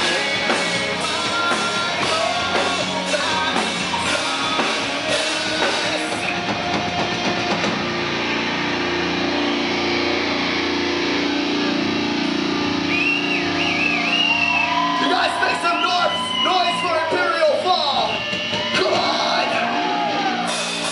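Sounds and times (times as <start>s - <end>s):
distorted guitar chord ringing: 0.0s - 15.0s
live heavy metal band: 0.0s - 20.9s
high wavering whoop: 13.2s - 17.2s, 18.2s - 20.8s.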